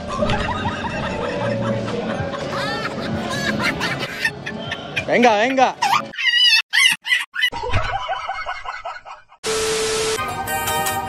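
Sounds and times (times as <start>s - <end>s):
static-like hiss: 9.4s - 10.2s.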